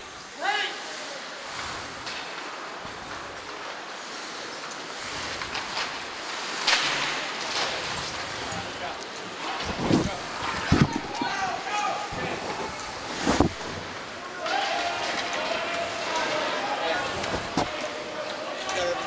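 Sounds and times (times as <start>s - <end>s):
skates hissing on ice: 0.0s - 10.7s.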